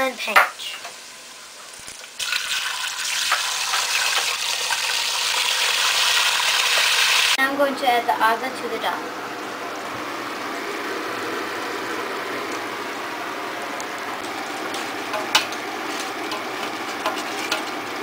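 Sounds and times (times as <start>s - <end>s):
food sizzling in hot oil: 0.0s - 7.4s.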